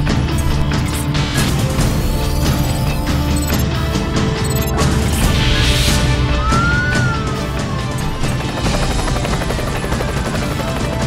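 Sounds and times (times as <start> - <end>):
dramatic theme music: 0.0 - 11.0
helicopter rotor chopping: 6.6 - 11.0.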